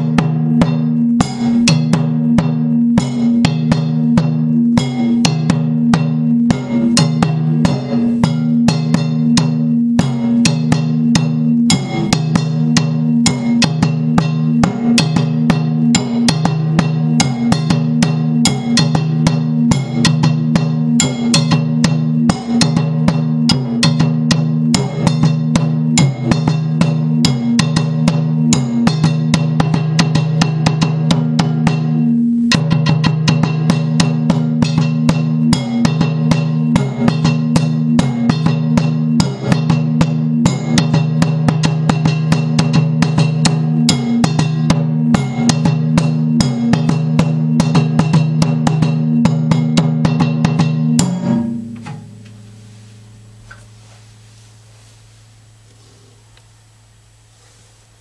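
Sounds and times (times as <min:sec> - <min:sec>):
bass drum strokes: 0:00.0 - 0:58.0.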